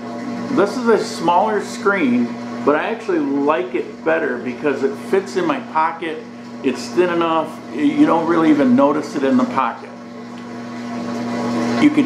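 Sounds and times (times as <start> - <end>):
mechanical hum: 0.0 - 12.0.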